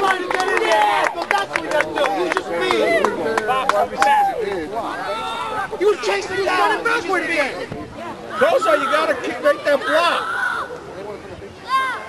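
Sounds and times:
overlapping indistinct voices: 0.0 - 11.6.

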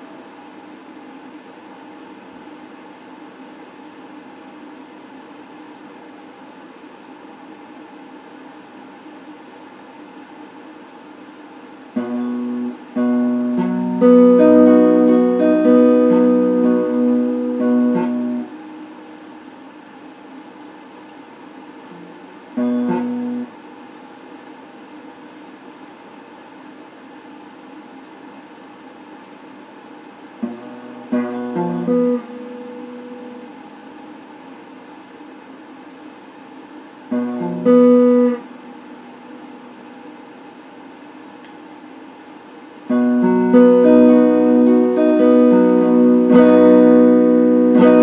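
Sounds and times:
steady hiss: 0.0 - 48.0
electric guitar phrases: 12.0 - 19.4, 21.9 - 23.6, 30.4 - 33.9, 37.0 - 40.2, 42.9 - 48.0.

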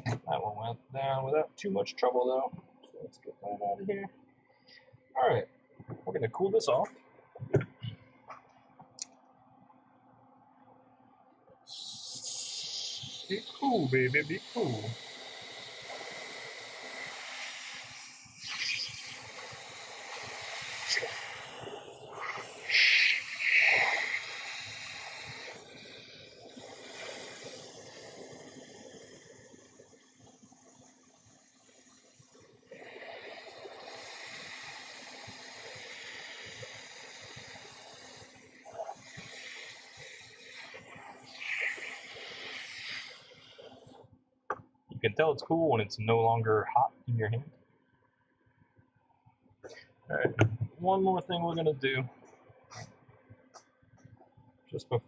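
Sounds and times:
blown air hissing: 11.7 - 44.0.

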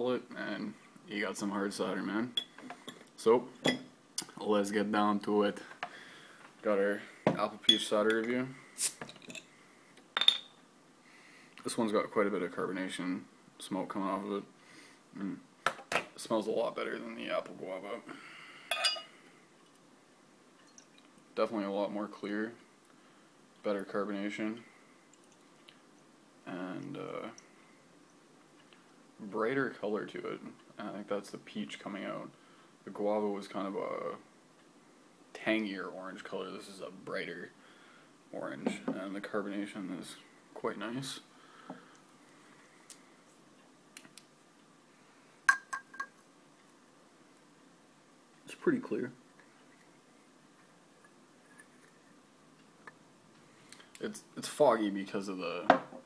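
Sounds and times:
drinking glass clinking: 3.6 - 3.9, 10.2 - 10.6, 18.7 - 19.1, 45.5 - 46.2.

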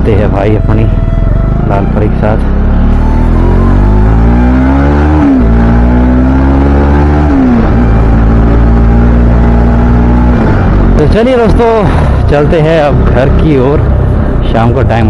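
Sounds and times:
motorcycle engine accelerating: 0.0 - 15.0.

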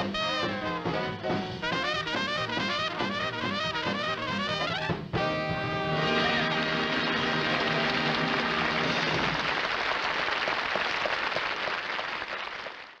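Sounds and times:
jazz band playing: 0.0 - 9.5
audience applause: 6.0 - 13.0.

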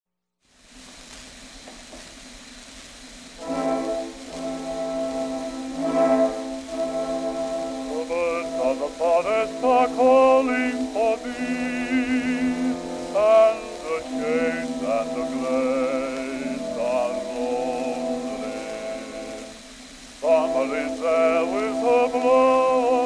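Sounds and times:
record surface hiss: 0.4 - 23.0
melody with vibrato: 3.4 - 19.6
small orchestra playing: 3.4 - 23.0.

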